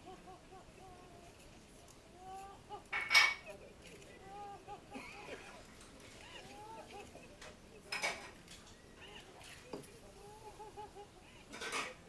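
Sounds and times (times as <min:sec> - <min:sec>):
faint high-pitched wavering voices: 0:00.0 - 0:12.0.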